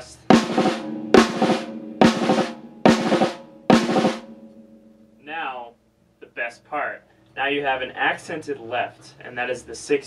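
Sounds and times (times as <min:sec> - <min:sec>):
snare drum roll: 0:00.3 - 0:04.4.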